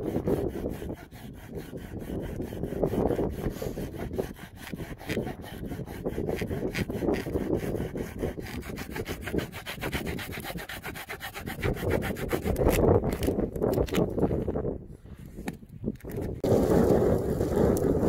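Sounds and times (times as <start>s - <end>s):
hand saw cutting wood: 0.0s - 14.0s.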